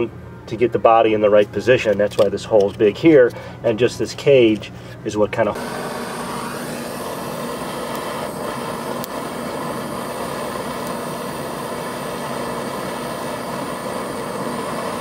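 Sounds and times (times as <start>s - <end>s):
gas torch hissing: 5.5s - 15.0s.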